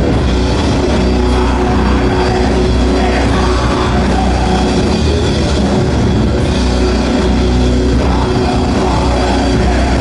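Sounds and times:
heavy metal band droning chord: 0:00.0 - 0:10.0.

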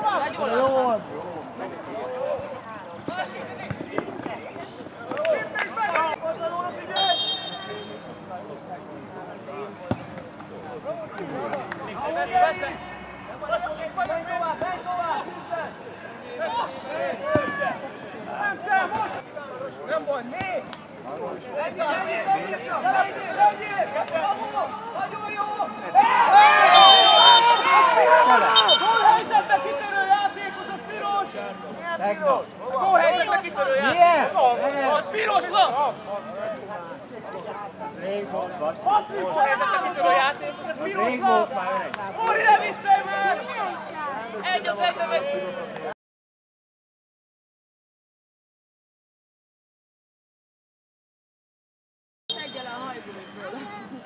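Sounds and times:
footballers shouting: 0:00.0 - 0:08.4, 0:10.7 - 0:20.7, 0:21.3 - 0:36.7, 0:37.4 - 0:45.8
ball being kicked: 0:09.9 - 0:10.2
people shouting: 0:22.8 - 0:31.3.

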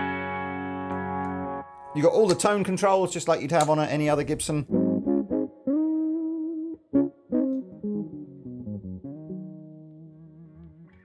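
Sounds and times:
electric guitar notes: 0:00.0 - 0:02.7, 0:04.6 - 0:11.0.

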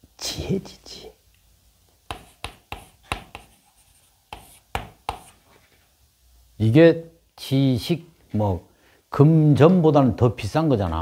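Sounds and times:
chalk scratching on blackboard: 0:02.1 - 0:05.7.

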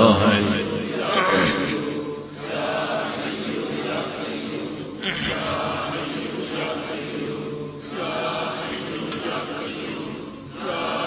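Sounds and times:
man chanting an invocation: 0:00.0 - 0:02.1.

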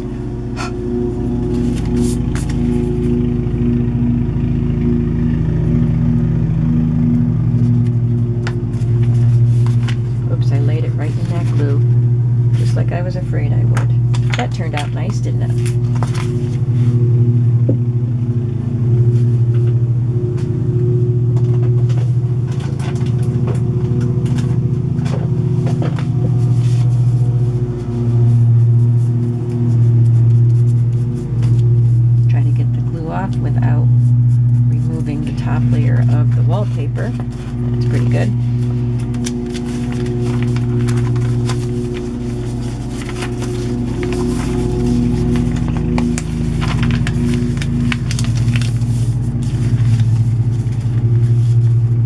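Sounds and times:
loud low hum: 0:00.0 - 0:52.0
paper rustling: 0:01.5 - 0:03.1, 0:08.4 - 0:11.8, 0:14.1 - 0:16.9, 0:24.2 - 0:32.0, 0:36.4 - 0:51.8.

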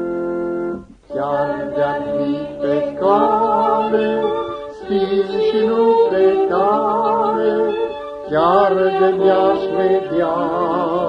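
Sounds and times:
musical accompaniment: 0:00.0 - 0:11.0
people singing a hymn: 0:01.1 - 0:11.0.

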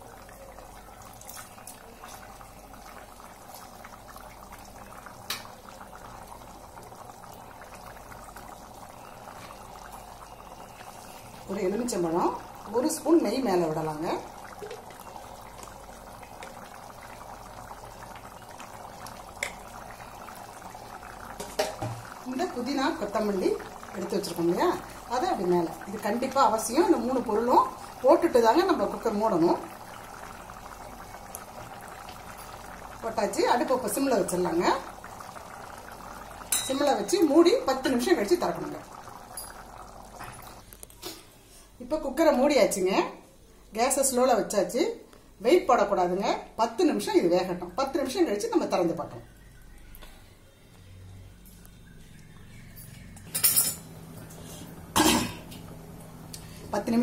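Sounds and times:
liquid bubbling at the boil: 0:00.0 - 0:43.2, 0:45.7 - 0:50.4, 0:51.4 - 0:57.0.

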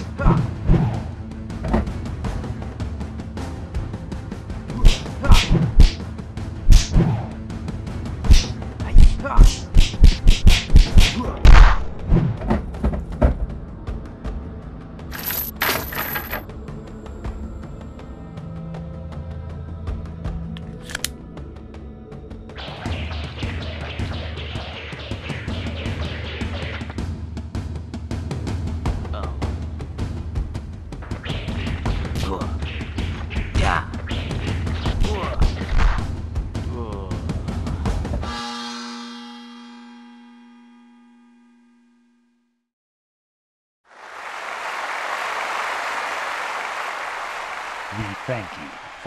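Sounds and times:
bright jingling sound effect: 0:15.1 - 0:16.4.

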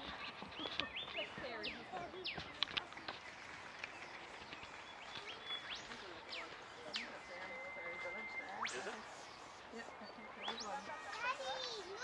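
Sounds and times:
distant chatter of people: 0:00.0 - 0:12.0
sharp high chirps: 0:08.0 - 0:09.4.

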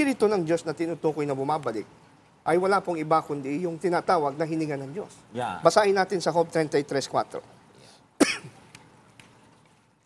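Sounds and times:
man coughing: 0:08.2 - 0:08.6.

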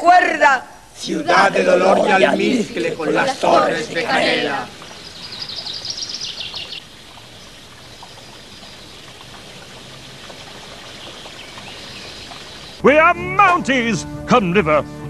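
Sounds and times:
voice: 0:00.0 - 0:04.7, 0:12.8 - 0:14.8
stream water flowing: 0:02.0 - 0:12.8
bird chirping: 0:03.8 - 0:12.8
music: 0:12.8 - 0:15.0.

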